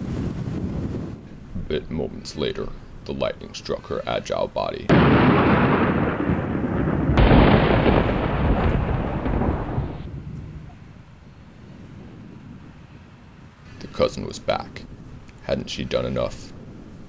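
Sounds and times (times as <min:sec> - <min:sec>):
thunder rumble: 0:00.0 - 0:01.9, 0:04.9 - 0:17.0
thunder crack: 0:04.9 - 0:12.8.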